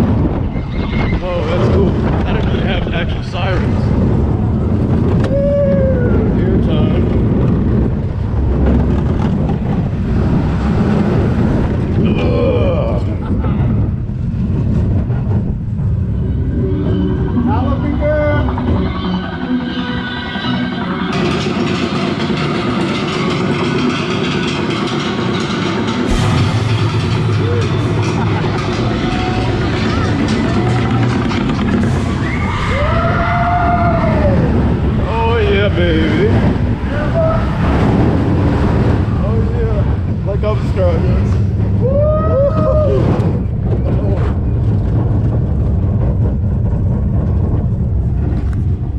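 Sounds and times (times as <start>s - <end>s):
wind on microphone: 0.0s - 19.4s
roller coaster rumbling on track: 0.0s - 48.9s
riders yelling: 36.8s - 37.7s.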